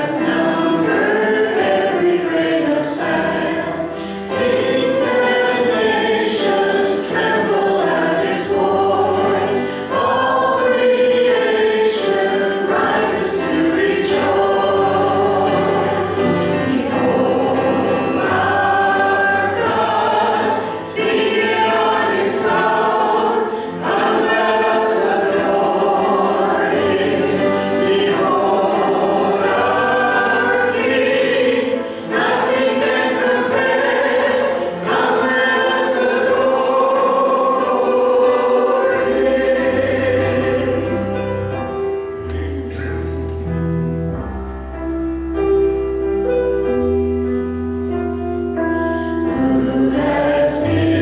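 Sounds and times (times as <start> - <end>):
group singing a hymn: 0.0 - 43.0, 48.6 - 51.0
keyboard accompaniment: 0.0 - 51.0.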